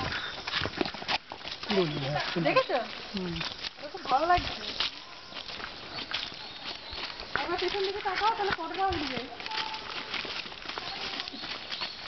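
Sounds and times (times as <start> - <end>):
footsteps on dirt path: 0.0 - 12.0
people talking: 1.7 - 4.8, 7.3 - 11.6.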